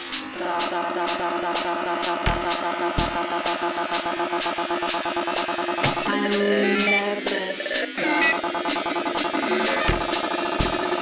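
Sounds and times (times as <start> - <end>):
electronic dance music: 0.0 - 11.0
synth pattern: 0.1 - 11.0
deep bass hits: 5.8 - 6.1
sharp clap-like hits: 5.8 - 6.1.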